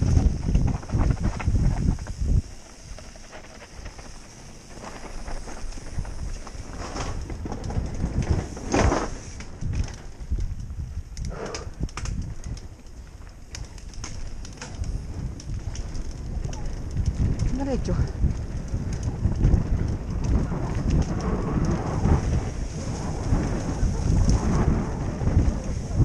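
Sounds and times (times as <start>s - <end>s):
bike knocking and rattling: 0.0s - 26.0s
wind rumble on microphone: 0.0s - 26.0s.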